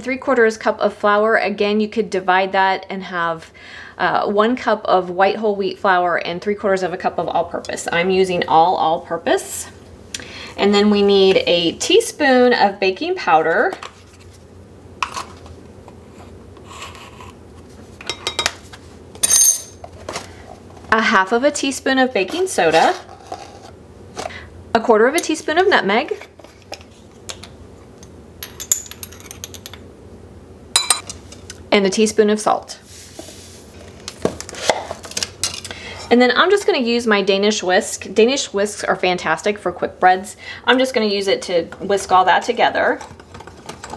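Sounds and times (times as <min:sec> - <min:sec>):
utensils clinking on glass bowl: 0:19.2 - 0:19.8, 0:30.8 - 0:31.1.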